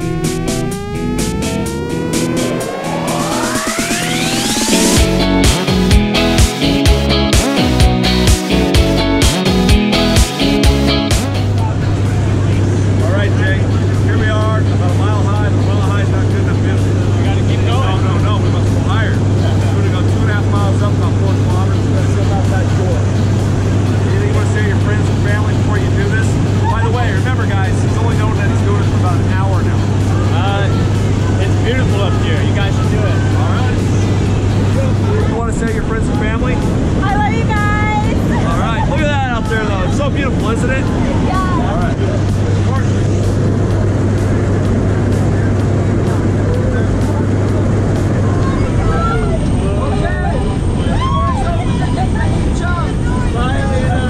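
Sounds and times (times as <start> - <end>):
plane engine and propeller drone: 0.0 - 5.7, 11.3 - 54.0
voices shouting: 48.2 - 54.0.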